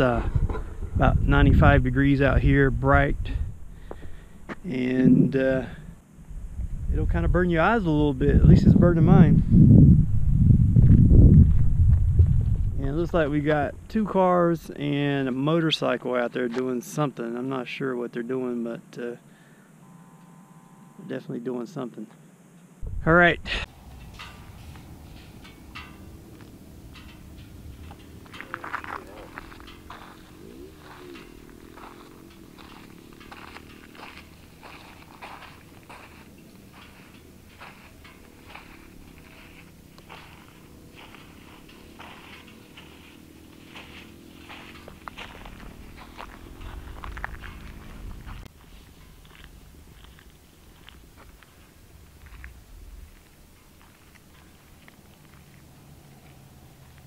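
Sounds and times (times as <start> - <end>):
vehicle engine drone: 0.0 - 8.7, 19.2 - 21.3, 21.9 - 57.0
footsteps crunching on salt crust: 26.0 - 57.0.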